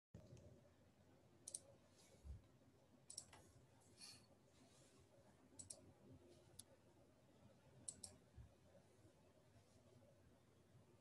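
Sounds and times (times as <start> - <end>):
faint computer clicks: 1.4 - 1.7, 3.1 - 3.5, 5.6 - 5.8, 7.8 - 8.2.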